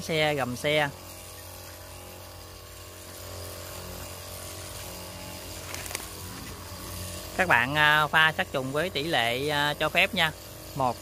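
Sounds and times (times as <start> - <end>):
spray hissing from wand: 0.0 - 11.0
sprayer pump hum: 0.0 - 11.0.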